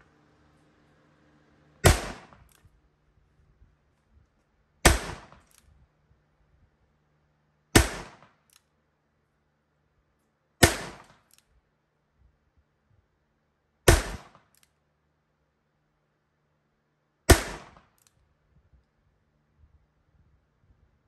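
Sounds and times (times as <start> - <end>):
revolver gunshots: 1.8 - 2.6, 4.8 - 5.5, 7.7 - 8.4, 10.6 - 11.2, 13.9 - 14.4, 17.3 - 17.9.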